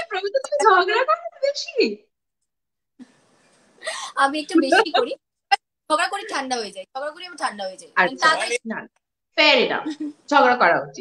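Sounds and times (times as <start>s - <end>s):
person speaking: 4.1s - 5.2s, 5.9s - 9.0s.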